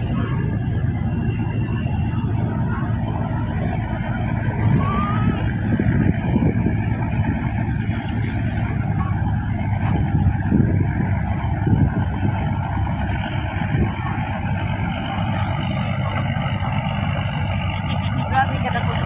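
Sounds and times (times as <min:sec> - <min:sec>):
boat engines rumbling: 0:00.0 - 0:19.0.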